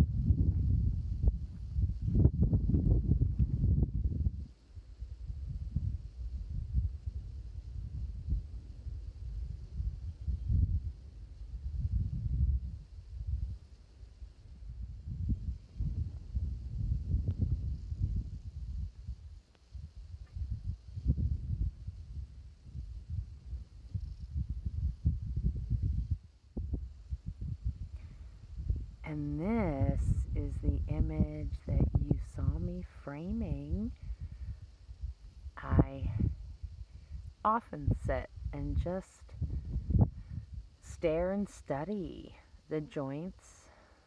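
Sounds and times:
wind buffeting microphone: 0:00.0 - 0:41.2.

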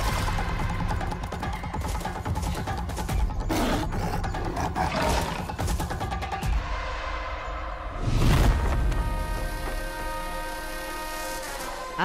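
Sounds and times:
film trailer music: 0:00.0 - 0:12.0.

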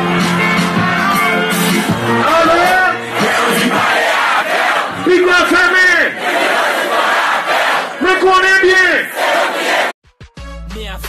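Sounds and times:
crowd chanting and shouting: 0:00.0 - 0:10.0.

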